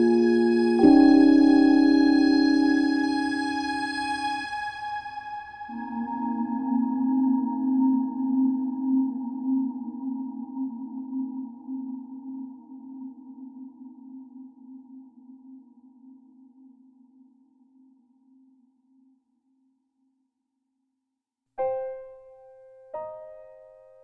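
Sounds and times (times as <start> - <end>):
low sustained note with overtones: 0.0 - 11.8.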